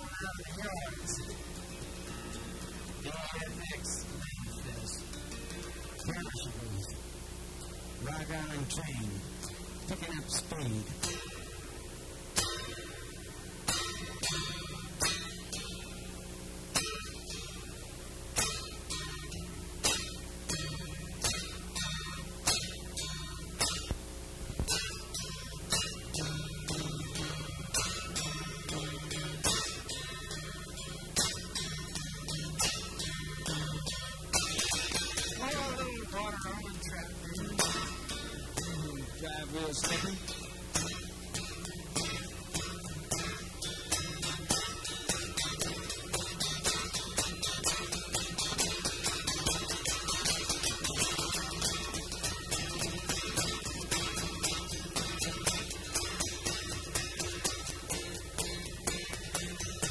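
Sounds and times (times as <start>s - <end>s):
acoustic guitar strumming chords: 0.0s - 59.9s.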